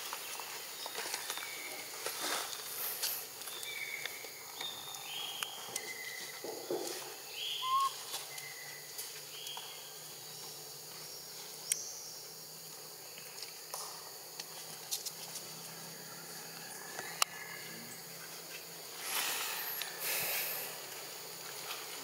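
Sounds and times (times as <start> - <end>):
high-pitched animal calls: 7.5 - 8.0.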